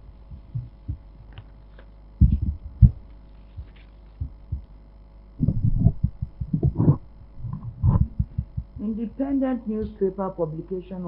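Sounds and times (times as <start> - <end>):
steady electrical hum: 0.0 - 11.0
dull thumps of handling noise: 2.2 - 4.6.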